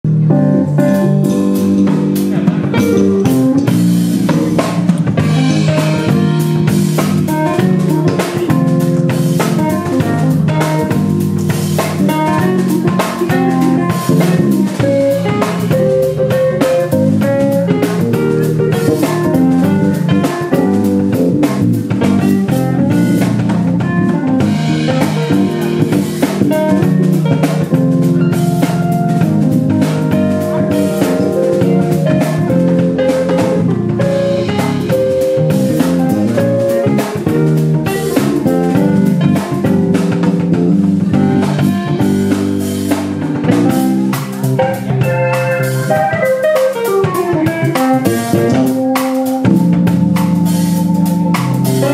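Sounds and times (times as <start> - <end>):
keyboard playing busy runs: 0.0 - 51.9
drum kit groove: 0.1 - 51.9.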